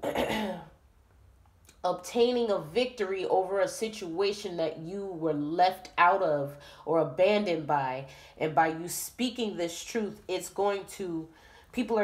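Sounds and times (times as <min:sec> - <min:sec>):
woman clearing her throat: 0:00.0 - 0:00.8.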